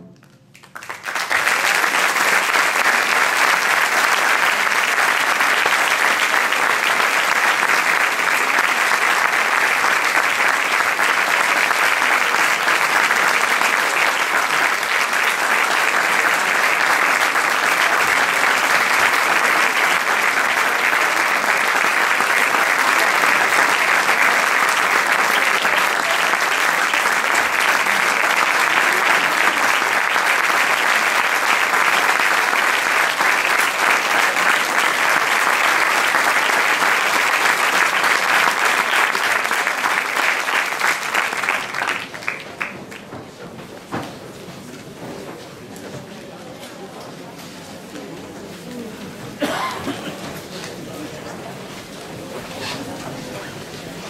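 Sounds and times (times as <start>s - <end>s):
audience applauding: 0.5s - 43.3s.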